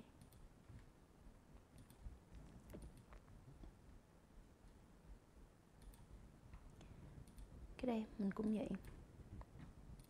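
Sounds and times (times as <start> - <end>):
computer mouse clicks: 0.2 - 0.5, 1.7 - 3.8, 5.8 - 6.1, 7.2 - 7.5.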